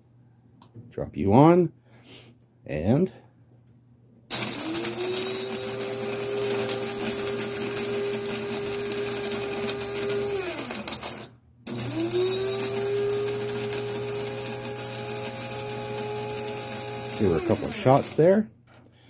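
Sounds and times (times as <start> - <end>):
coffee grinder whirring: 4.3 - 18.4.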